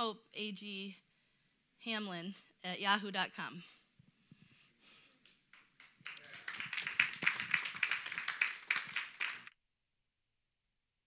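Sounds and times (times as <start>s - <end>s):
congregation applauding: 5.5s - 9.5s.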